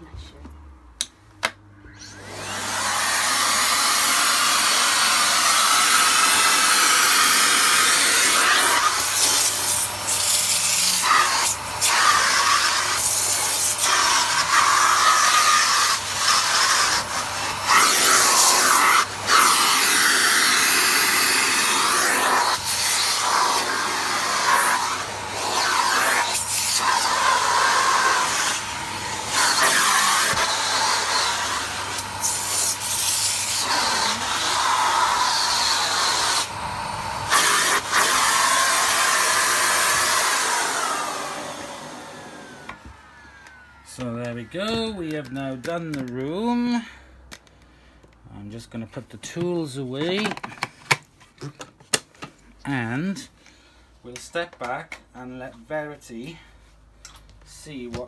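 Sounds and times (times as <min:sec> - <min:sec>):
vacuum cleaner running: 0:01.8 - 0:46.9
vacuum nozzle on carpet: 0:01.9 - 0:46.8.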